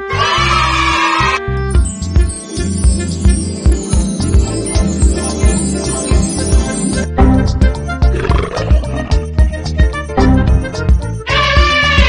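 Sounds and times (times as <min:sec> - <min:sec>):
background music with steady beat: 0:01.5 - 0:12.0.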